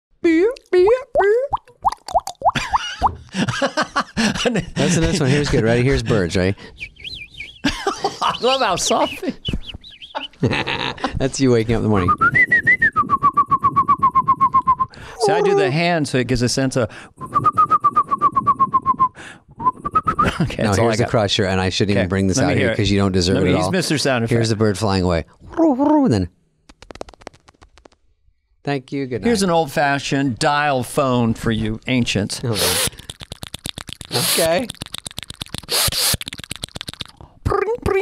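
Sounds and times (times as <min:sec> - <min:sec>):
short rising mouth plops: 0:01.2 - 0:03.2, 0:32.5 - 0:37.4
person whistling birdsong imitation: 0:06.7 - 0:10.4, 0:12.1 - 0:15.0, 0:17.2 - 0:20.4
short rising whistle: 0:12.1 - 0:15.0, 0:17.2 - 0:20.3
person making pitched vocal calls: 0:15.1 - 0:15.9, 0:32.5 - 0:38.0.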